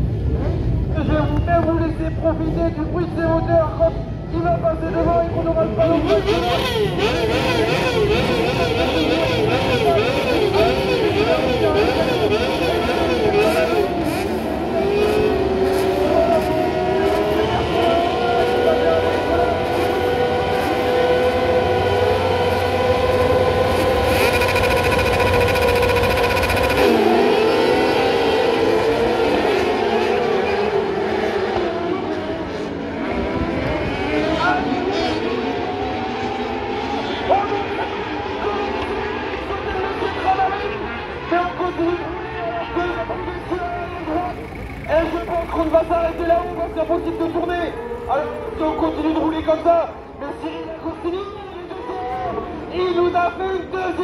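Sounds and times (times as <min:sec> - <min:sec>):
buggy engines revving: 0:04.9 - 0:41.9, 0:42.5 - 0:50.5.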